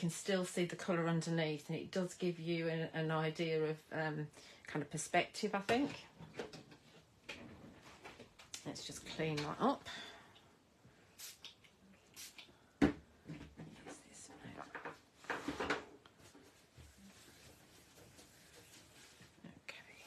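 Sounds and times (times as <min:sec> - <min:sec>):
wipe rustling: 0:16.1 - 0:19.4
soft wiping on a mat: 0:16.2 - 0:20.0.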